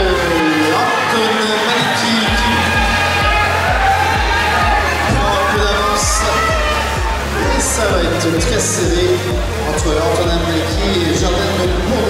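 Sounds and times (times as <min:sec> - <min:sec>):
bass drum beat: 0:02.3 - 0:12.0.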